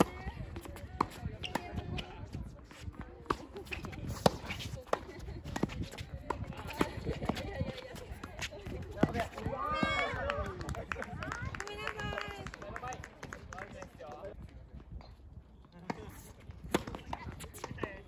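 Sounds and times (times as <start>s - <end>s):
footsteps on hard court: 0.5s - 10.1s
tennis ball struck by rackets: 3.2s - 7.4s, 16.6s - 17.9s.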